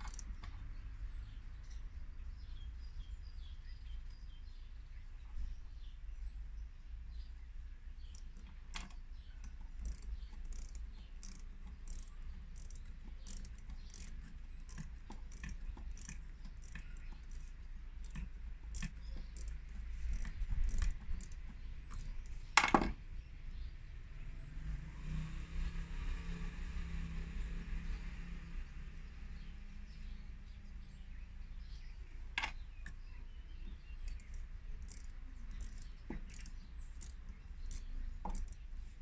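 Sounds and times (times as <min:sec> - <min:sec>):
metallic clicks of hand tools: 0:00.0 - 0:00.6, 0:08.1 - 0:23.0, 0:34.0 - 0:38.7.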